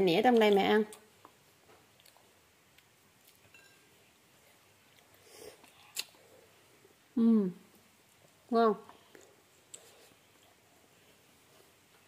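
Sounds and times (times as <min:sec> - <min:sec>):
faint chewing: 0:00.4 - 0:03.8, 0:04.4 - 0:06.5.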